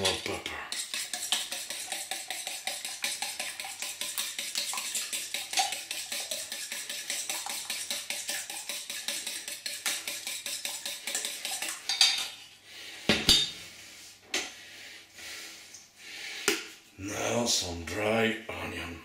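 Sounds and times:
whisk clinking in metal bowl: 0.0 - 12.4.

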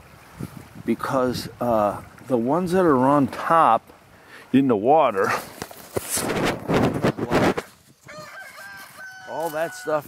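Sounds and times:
footsteps crunching on gravel: 5.3 - 6.4, 7.0 - 9.8.

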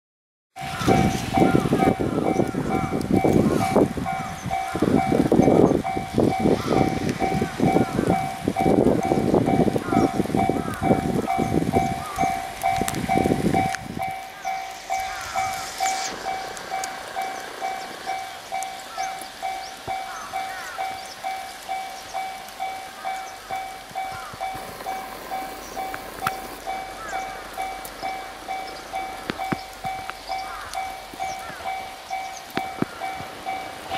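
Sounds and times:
heavy low rumbling: 0.6 - 19.8
level-crossing warning bell: 0.6 - 33.9.

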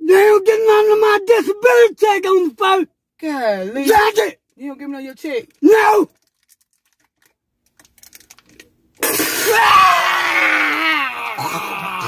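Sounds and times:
woman screaming: 9.4 - 12.0.

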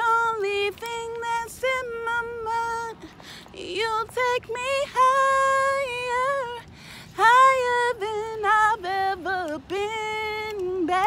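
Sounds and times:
woman singing a cappella: 0.0 - 11.0
singer breathing: 3.0 - 3.6, 6.7 - 7.2.

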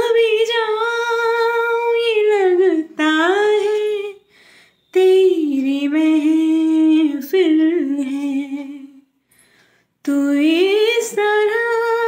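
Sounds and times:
person breathing in: 4.2 - 4.8, 9.2 - 10.0.

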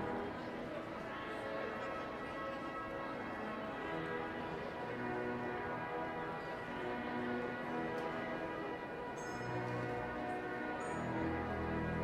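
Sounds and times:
pipe organ playing chords: 3.4 - 12.0.

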